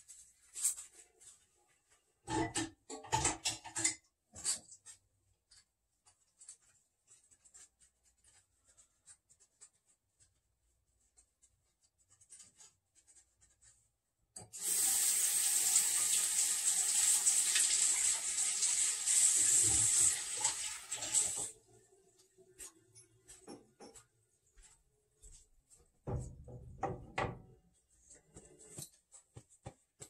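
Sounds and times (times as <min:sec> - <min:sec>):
water running into sink: 0:14.4 - 0:21.5.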